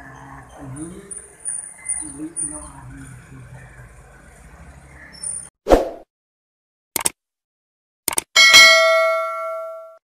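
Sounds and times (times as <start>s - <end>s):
bright bell ding: 8.4s - 10.0s.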